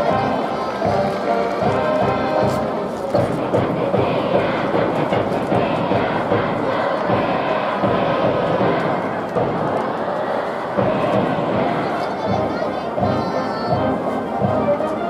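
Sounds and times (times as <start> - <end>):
brass band playing: 0.0 - 6.9, 10.8 - 15.0
drum beat: 0.0 - 14.8
crowd cheering: 0.0 - 15.0.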